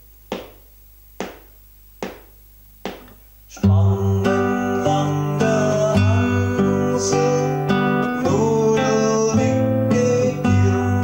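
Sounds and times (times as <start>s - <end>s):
sharp percussive taps: 0.3s - 0.6s, 1.2s - 3.2s.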